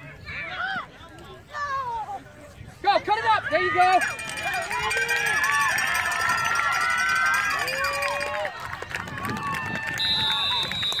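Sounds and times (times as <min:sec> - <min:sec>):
people yelling and cheering: 0:00.0 - 0:11.0
high whistle: 0:10.0 - 0:11.0.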